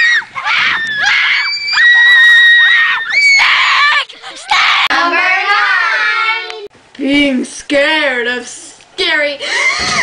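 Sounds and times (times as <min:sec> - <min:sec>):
children screaming: 0:00.0 - 0:06.5.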